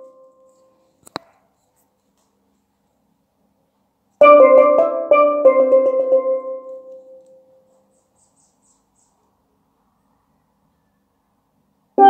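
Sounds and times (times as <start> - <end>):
steelpan melody: 4.2 - 7.3.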